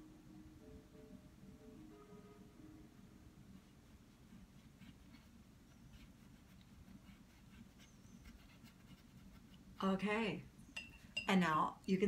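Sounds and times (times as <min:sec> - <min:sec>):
faint room hum: 0:00.0 - 0:12.0
paintbrush scratching on canvas: 0:03.5 - 0:10.1.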